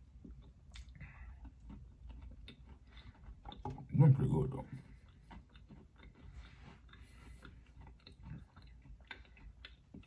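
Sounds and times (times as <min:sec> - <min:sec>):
chewing cookie: 0:00.0 - 0:10.0.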